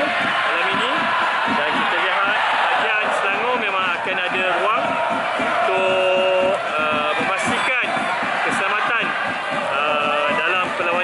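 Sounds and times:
stadium crowd noise: 0:00.0 - 0:11.0
man talking: 0:01.6 - 0:04.8, 0:05.7 - 0:09.1, 0:09.7 - 0:11.0.

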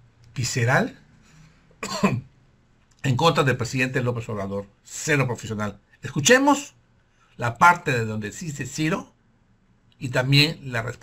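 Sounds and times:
man clearing his throat: 0:01.8 - 0:02.3.

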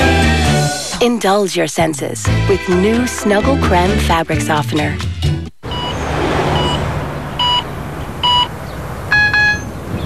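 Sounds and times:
gas pump beeps: 0:05.6 - 0:06.0, 0:06.6 - 0:06.8, 0:07.4 - 0:08.5, 0:09.1 - 0:09.8.

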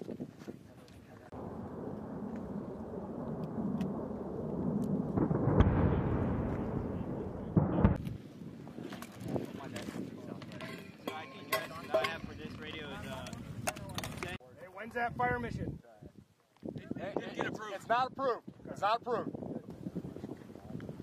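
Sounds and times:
deep rolling outdoor rumble: 0:01.3 - 0:08.6.

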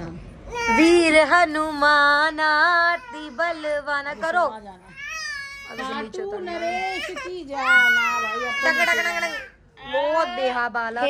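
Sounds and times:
toddler whining cry: 0:03.0 - 0:10.6.

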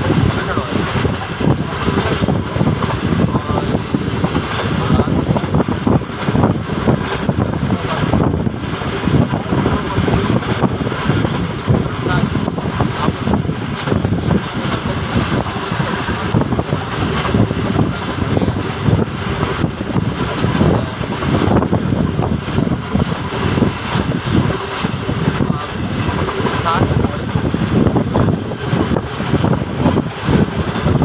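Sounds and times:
train wheels rumbling on rails: 0:00.0 - 0:31.0
wind rushing past microphone: 0:00.0 - 0:31.0.

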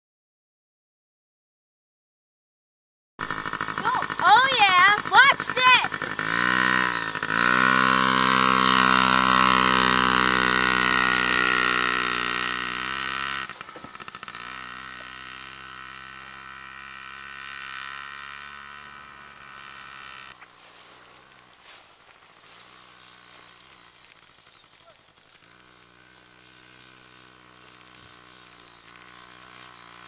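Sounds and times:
small dirt bike engine revving: 0:03.2 - 0:30.0.

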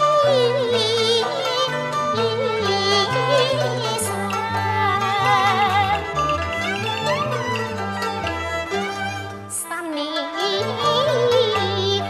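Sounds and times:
opera melody with vibrato: 0:00.0 - 0:12.0.

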